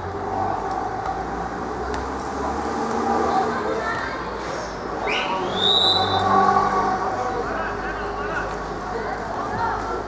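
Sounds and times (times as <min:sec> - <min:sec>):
referee's whistle: 0:05.0 - 0:06.2.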